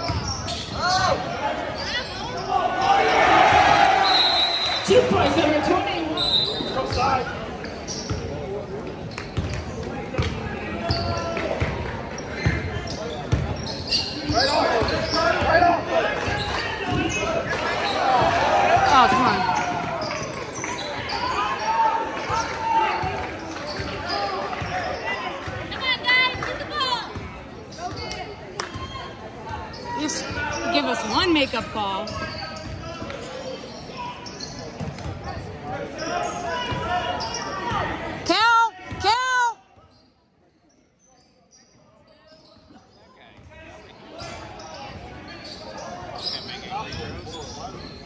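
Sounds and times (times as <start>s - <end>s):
players and spectators calling out: 0.0s - 40.2s.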